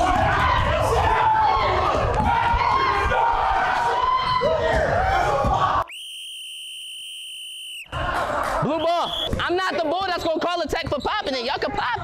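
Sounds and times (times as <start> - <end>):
people shouting excitedly: 0.0 - 5.9.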